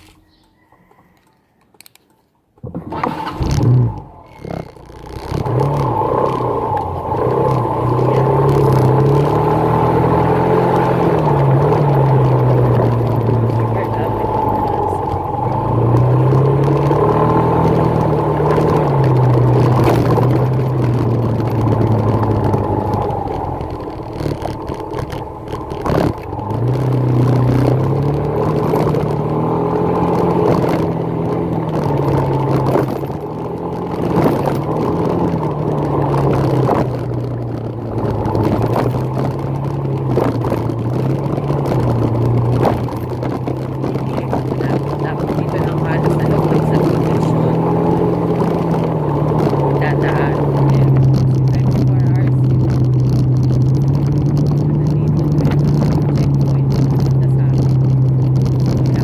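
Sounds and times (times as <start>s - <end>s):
motorcycle engine revving: 2.6s - 59.0s.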